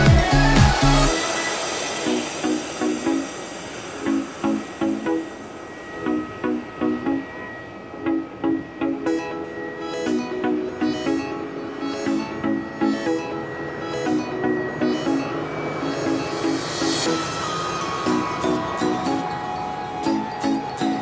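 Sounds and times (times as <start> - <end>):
heavy bass beat: 0.0 - 3.1
high percussion: 0.0 - 9.4, 11.9 - 21.0.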